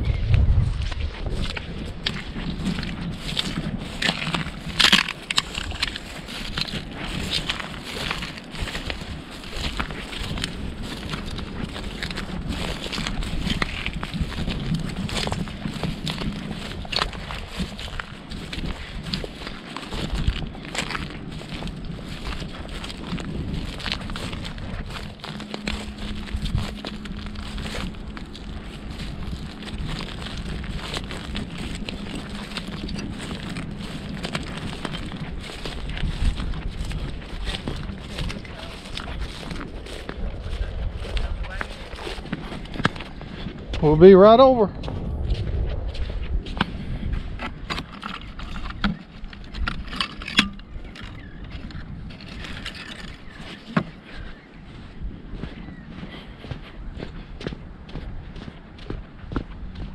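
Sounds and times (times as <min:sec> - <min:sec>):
footsteps crunching on sand: 0:00.1 - 0:59.9.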